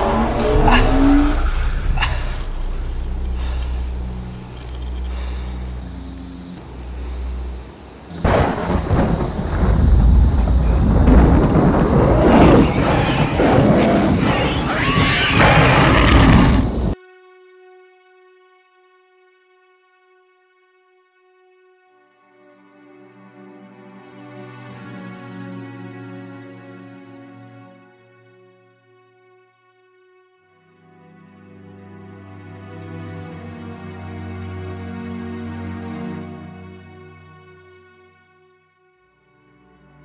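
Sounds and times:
low rumbling drone: 0.0 - 17.0
loud churning energy blast: 8.2 - 17.0.

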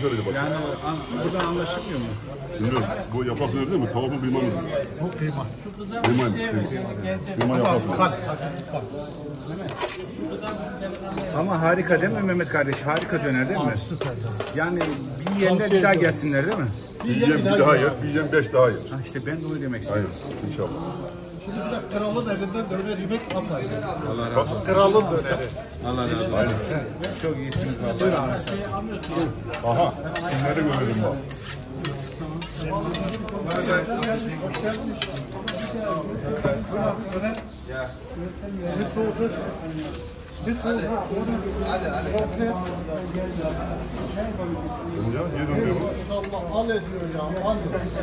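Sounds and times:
grill sizzling: 0.0 - 48.0
people talking in background: 0.0 - 48.0.

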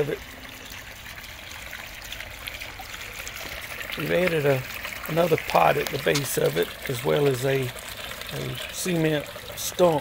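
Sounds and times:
fountain water trickling: 0.0 - 10.0.

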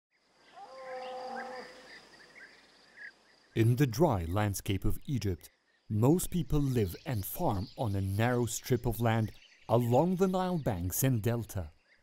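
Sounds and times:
farm animal call: 0.5 - 1.9
bird chirps: 5.3 - 12.0.

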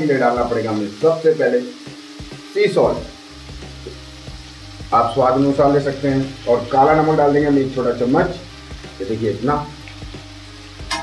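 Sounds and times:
vegetables sizzling in a pan: 0.0 - 11.0.

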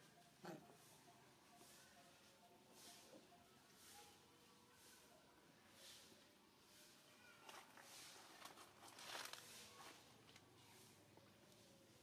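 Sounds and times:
soft rustles: 3.7 - 11.8.

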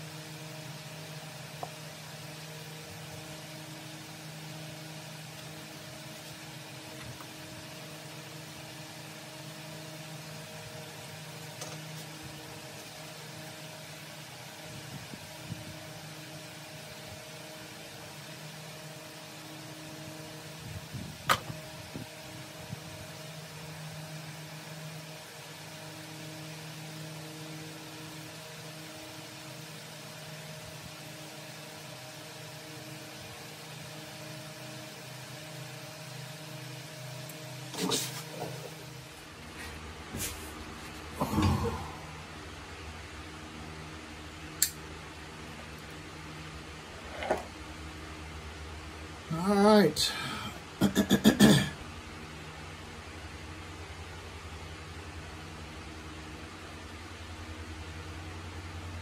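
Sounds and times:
mechanical hum with low drone: 0.0 - 59.0.

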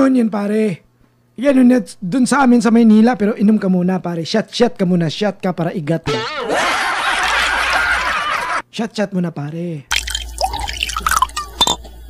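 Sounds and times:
dripping and gurgling: 9.9 - 12.0
liquid pouring into a glass: 9.9 - 12.0.

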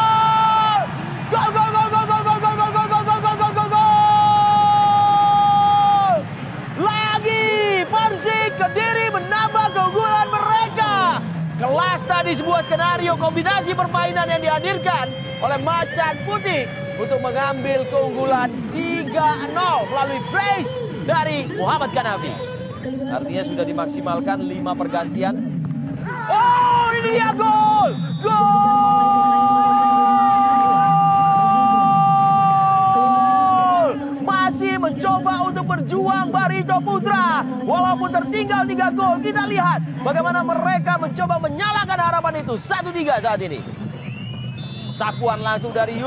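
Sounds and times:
commentator's long goal shout: 0.0 - 6.2
excited football commentator: 0.0 - 6.2, 6.8 - 22.4, 26.1 - 43.6
stadium crowd noise: 0.0 - 46.0.

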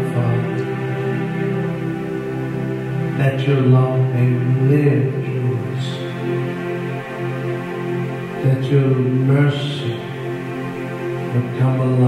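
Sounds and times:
man's wordless chanting voice: 0.0 - 0.8, 3.1 - 6.4, 8.4 - 10.2, 11.3 - 12.0
electronic keyboard chords: 0.0 - 12.0.

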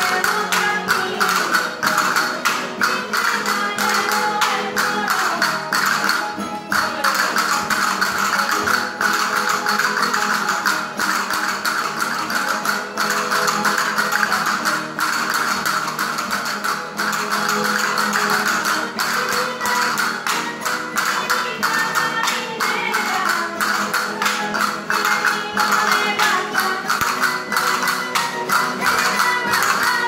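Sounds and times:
guitars playing dance tune: 0.0 - 30.0
sharp percussive clicks: 0.0 - 30.0.

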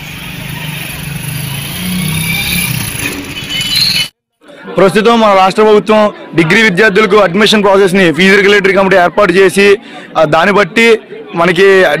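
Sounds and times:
passing vehicle engines: 0.0 - 3.7
outdoor din: 0.0 - 4.2.

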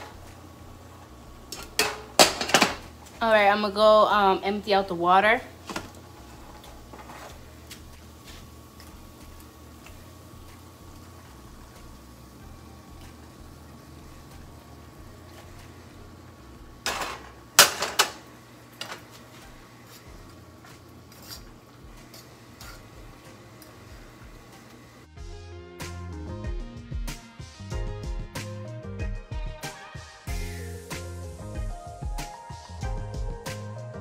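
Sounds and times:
steady low hum: 5.4 - 25.1
metal fork scraping a pot: 21.1 - 21.5.

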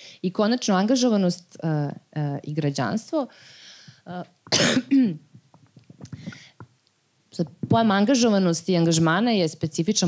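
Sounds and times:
woman coughing into microphone: 4.5 - 5.3.

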